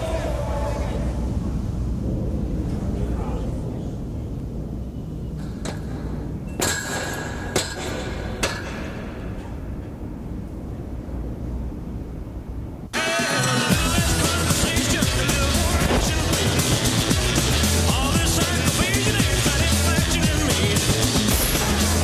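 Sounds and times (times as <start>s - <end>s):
low steady rumble: 0.0s - 13.0s
loud music: 12.9s - 22.0s.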